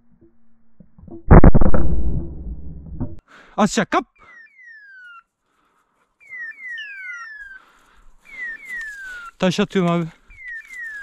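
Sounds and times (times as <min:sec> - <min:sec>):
falling electronic whistles: 0:04.2 - 0:05.3, 0:06.2 - 0:07.6, 0:08.2 - 0:09.4, 0:10.3 - 0:11.0.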